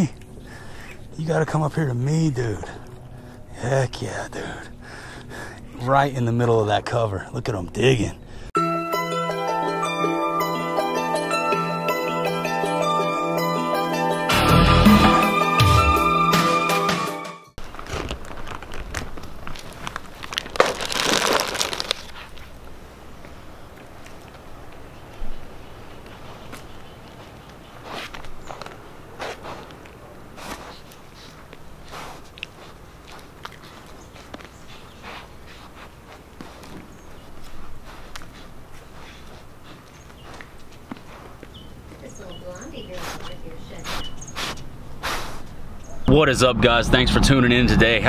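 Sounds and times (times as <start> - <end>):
rushing burst: 46.2 - 48.0.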